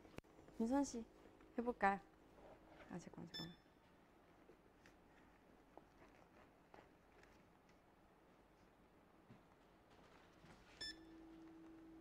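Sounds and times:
short electronic beep: 10.8s - 11.1s.

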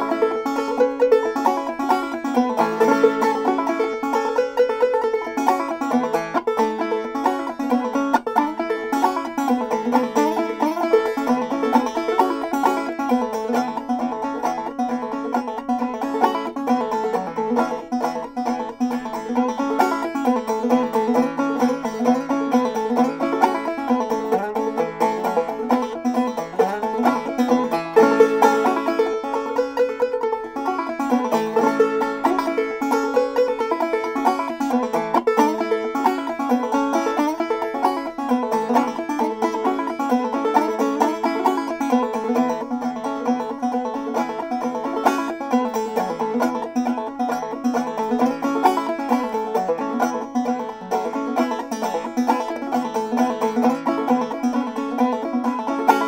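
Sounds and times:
banjo playing old-time tune: 0.0s - 56.0s.

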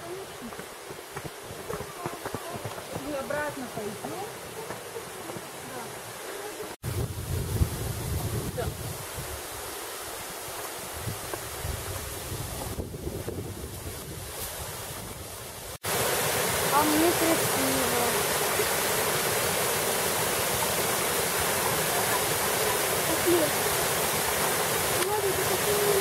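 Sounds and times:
waterfall rushing: 0.0s - 6.8s, 15.3s - 26.0s
wind on microphone: 6.8s - 9.8s, 10.4s - 15.8s.

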